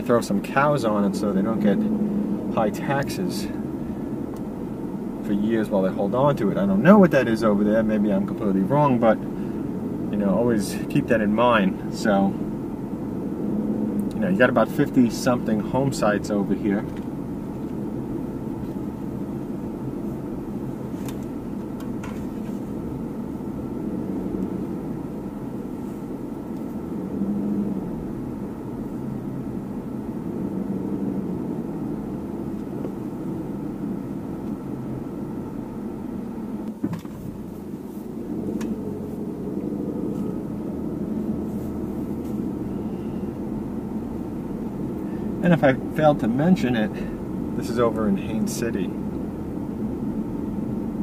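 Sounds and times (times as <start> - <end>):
car engine and tyre rumble: 0.0 - 51.0.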